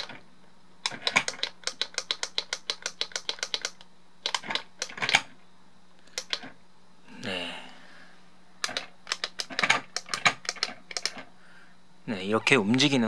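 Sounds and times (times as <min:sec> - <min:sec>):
toy car plastic clicks: 0:00.9 - 0:05.0.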